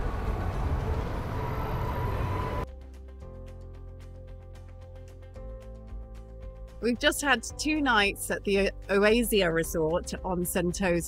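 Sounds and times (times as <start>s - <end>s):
road train rumbling past: 0.0s - 2.7s.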